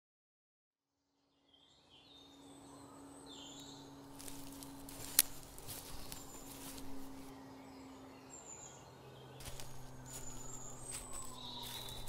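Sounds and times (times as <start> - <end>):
bird chirps: 1.4 - 12.0
steady low hum: 2.2 - 12.0.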